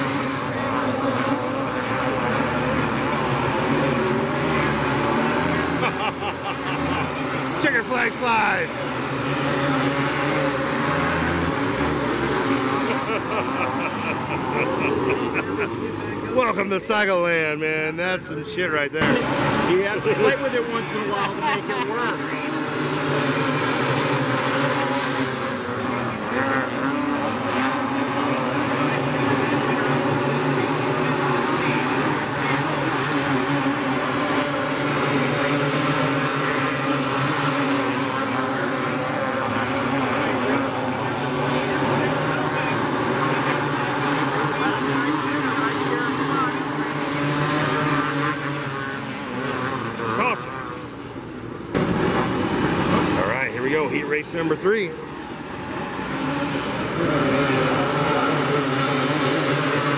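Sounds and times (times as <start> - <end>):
racing kart engines droning: 0.0 - 59.9.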